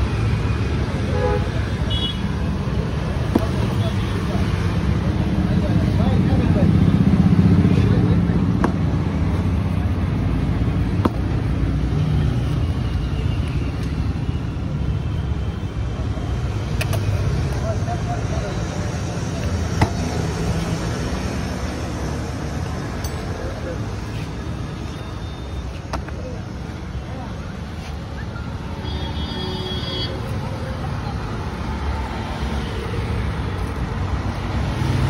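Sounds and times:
low traffic rumble: 0.0s - 35.0s.

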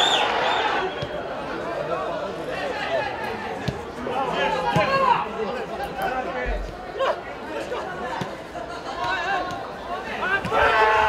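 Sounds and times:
broadcast voices and chatter: 0.8s - 11.0s.

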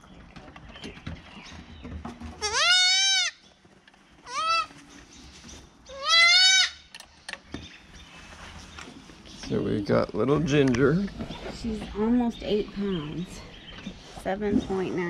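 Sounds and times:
goat kid bleating: 2.4s - 3.4s, 4.2s - 4.7s, 5.9s - 6.8s.

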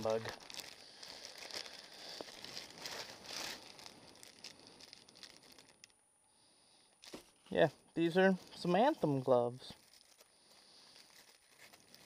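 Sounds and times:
plastic bag crinkling: 0.0s - 6.0s, 9.6s - 12.0s.

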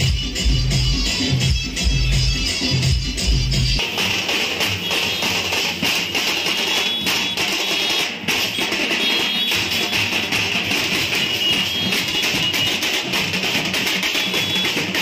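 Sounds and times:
drums beaten fast: 0.0s - 15.0s.

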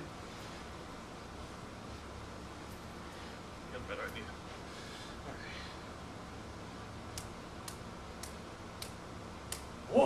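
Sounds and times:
low room hum: 0.0s - 10.0s
faint sharp clicks: 7.1s - 9.7s.

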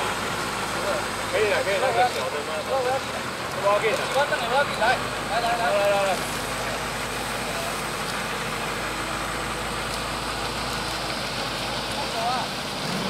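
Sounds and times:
tow tractor engine running: 0.0s - 13.0s.

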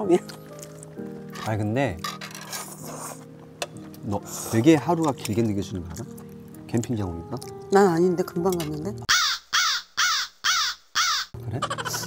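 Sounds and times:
crow cawing: 9.1s - 12.0s.

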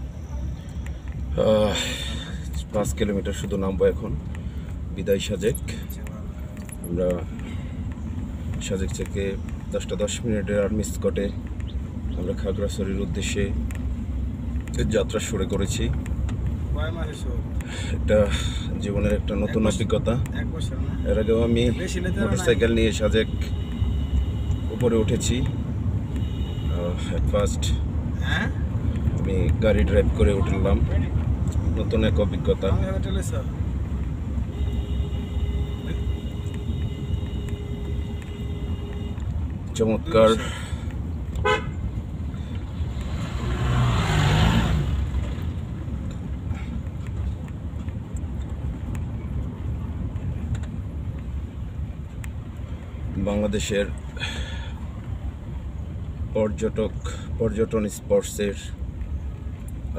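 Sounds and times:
car road and engine rumble: 0.0s - 59.9s
person speaking: 21.0s - 23.5s
vehicle horn: 21.0s - 27.2s, 34.4s - 39.4s, 41.4s - 41.9s.

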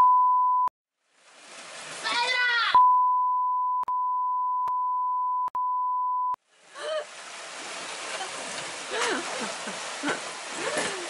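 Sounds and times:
censor bleep tone: 0.0s - 0.7s, 2.8s - 6.4s.

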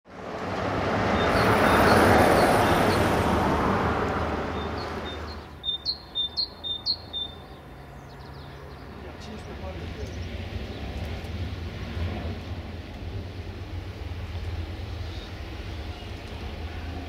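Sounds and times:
road vehicle passing by: 0.1s - 17.0s
small bird chirping: 4.6s - 9.0s.

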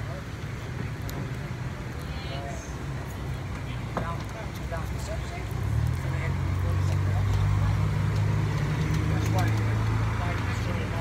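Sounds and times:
faint voices: 0.0s - 11.0s
vehicle engine humming: 0.0s - 11.0s.

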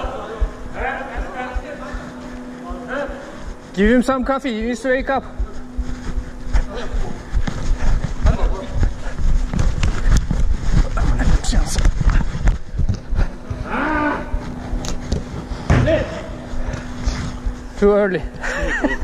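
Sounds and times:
steady low hum: 0.0s - 19.0s
camera handling rumble and knocks: 8.8s - 13.4s
person shouting: 13.6s - 14.4s.

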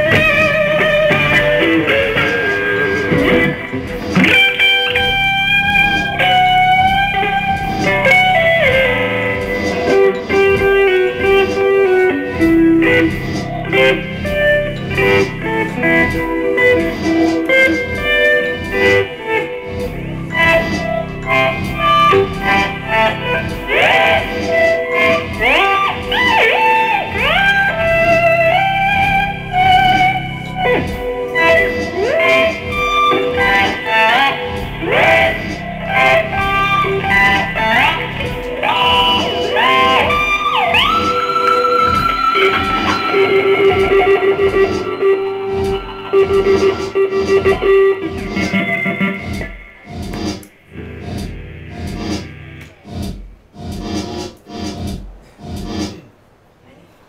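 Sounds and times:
guitar plucks and taps: 0.0s - 52.8s
electric guitar sliding notes: 0.0s - 52.9s.

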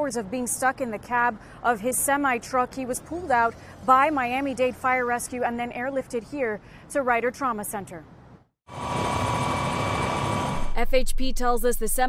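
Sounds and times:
heavy machinery engine with whine: 8.7s - 11.0s.

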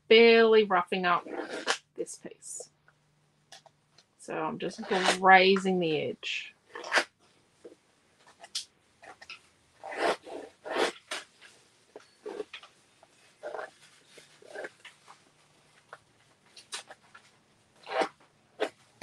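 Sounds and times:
tool scraping paper edge: 4.8s - 5.2s.

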